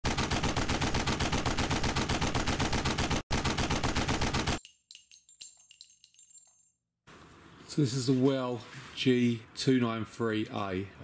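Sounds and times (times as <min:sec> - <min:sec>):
rapid automatic gunfire: 0:00.0 - 0:04.6
light clinks with high ringing: 0:04.6 - 0:06.9.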